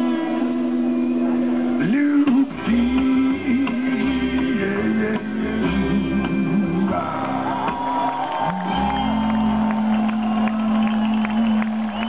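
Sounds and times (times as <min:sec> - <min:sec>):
live band ending a song: 0:01.9 - 0:12.0.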